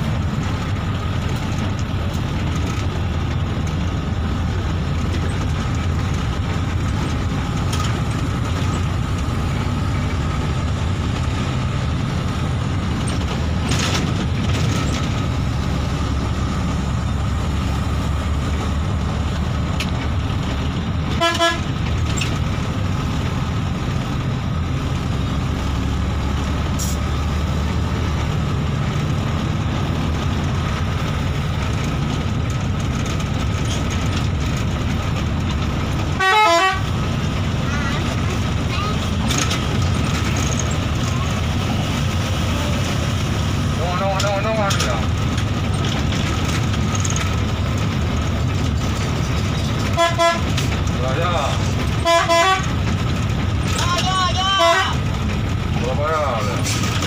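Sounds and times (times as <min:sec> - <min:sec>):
bus engine running: 0:00.0 - 0:57.0
bus horn: 0:21.1 - 0:21.8, 0:36.1 - 0:37.1, 0:49.8 - 0:50.7, 0:51.8 - 0:52.9, 0:54.3 - 0:55.1.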